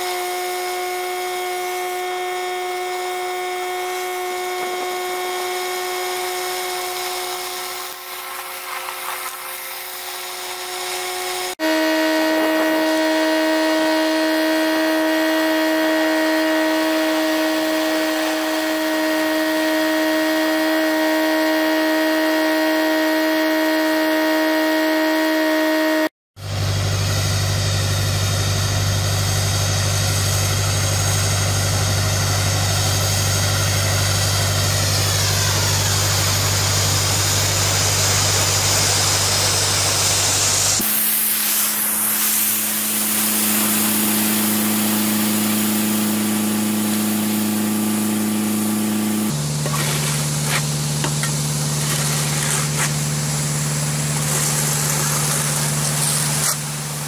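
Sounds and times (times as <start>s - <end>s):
pressure washer spraying water: 0.0s - 20.8s, 29.3s - 57.0s
mechanical hum: 0.0s - 57.0s.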